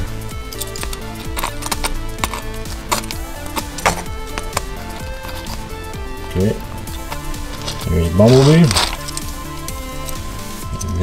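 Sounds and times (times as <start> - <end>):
background music with held notes: 0.0 - 11.0
plastic toy parts clicking: 0.5 - 5.7, 6.9 - 9.4, 10.0 - 11.0.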